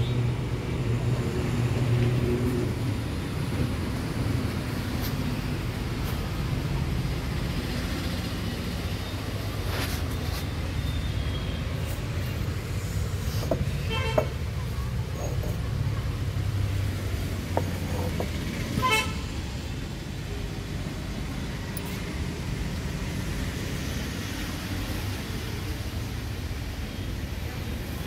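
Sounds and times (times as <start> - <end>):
low traffic rumble: 0.0 - 28.0
vehicle horn toots: 13.8 - 14.3, 18.8 - 19.2
faint knocks: 17.5 - 18.4.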